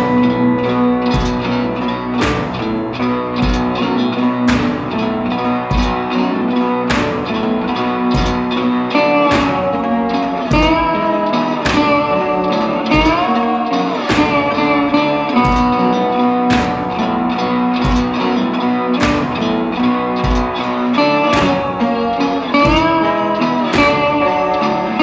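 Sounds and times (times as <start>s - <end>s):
low thumping beat: 0.0s - 25.0s
slide guitar notes: 0.0s - 25.0s.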